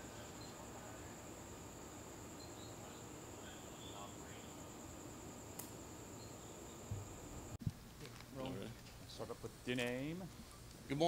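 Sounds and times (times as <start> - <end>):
crickets trilling: 0.0 - 7.6.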